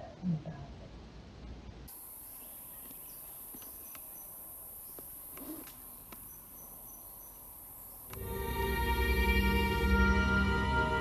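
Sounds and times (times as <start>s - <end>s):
insects high-pitched drone: 1.9s - 11.0s.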